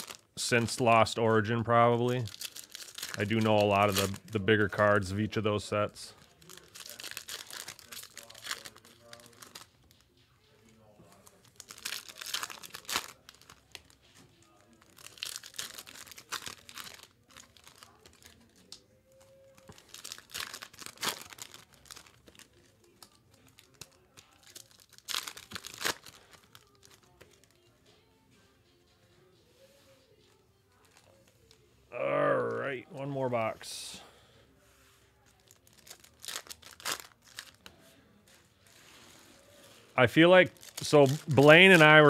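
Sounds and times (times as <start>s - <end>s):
foil wrappers tearing and crinkling: 0.0s - 1.1s, 2.0s - 4.8s, 6.1s - 9.7s, 11.2s - 27.4s, 35.2s - 37.8s, 38.6s - 42.0s.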